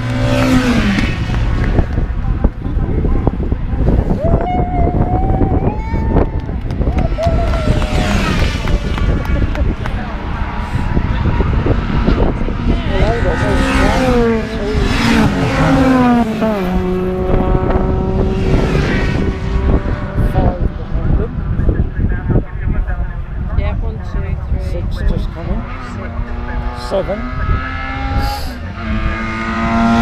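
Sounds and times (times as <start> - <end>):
racing cars passing at speed: 0.0 - 30.0.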